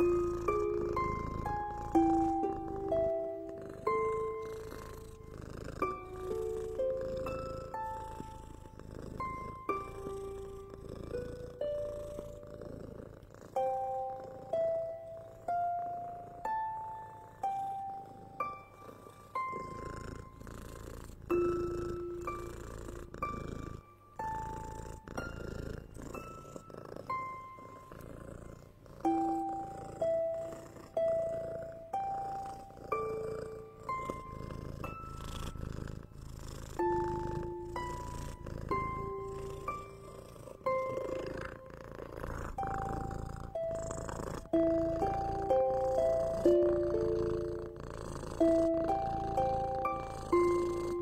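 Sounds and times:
cat purring: 0:00.0 - 0:51.0
soft plucked melody: 0:00.0 - 0:51.0.

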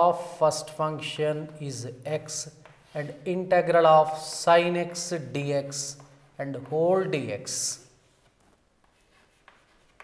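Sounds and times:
chalk tapping: 0:02.2 - 0:10.0
chalk writing on a chalkboard: 0:02.3 - 0:03.4, 0:04.0 - 0:10.0.

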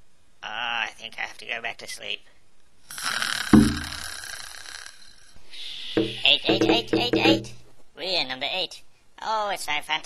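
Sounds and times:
loud low thud: 0:03.6 - 0:04.0.

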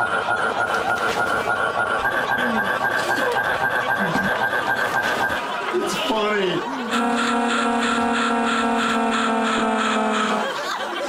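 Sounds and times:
harsh electronic buzzing tone: 0:06.9 - 0:10.6.

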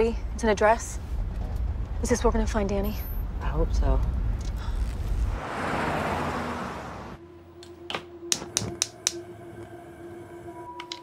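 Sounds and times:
car driving past: 0:05.3 - 0:07.3.

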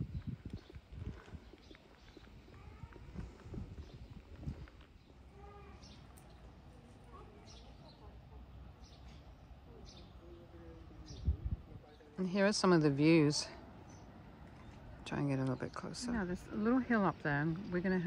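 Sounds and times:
footsteps on cobblestones: 0:00.0 - 0:06.4
faint distant voices: 0:01.8 - 0:18.0.

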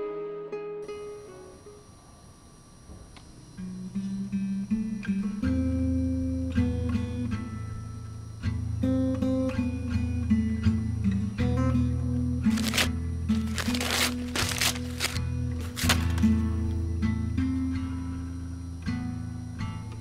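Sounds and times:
acoustic guitar picking notes: 0:00.0 - 0:02.0, 0:03.4 - 0:20.0.

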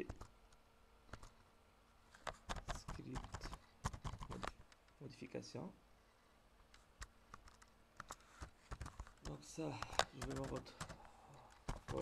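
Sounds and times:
computer keyboard clicks: 0:00.0 - 0:00.3, 0:02.2 - 0:04.8, 0:07.0 - 0:12.0.

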